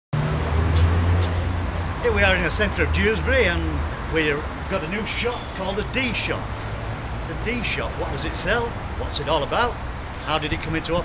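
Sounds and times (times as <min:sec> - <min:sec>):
street noise: 0:00.1 - 0:11.0.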